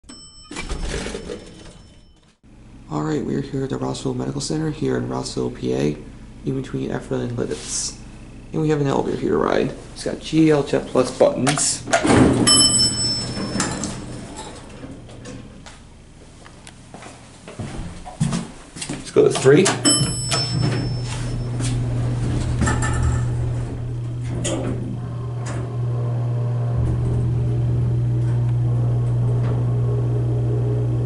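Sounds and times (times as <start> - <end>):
elevator doors sliding open: 0.1 - 2.0, 11.9 - 15.6, 19.8 - 31.0
bell-like ding: 0.1 - 2.3, 12.5 - 14.1, 19.8 - 21.5
clattering noise with low rumble: 17.5 - 30.4
call button press: 19.7 - 21.5.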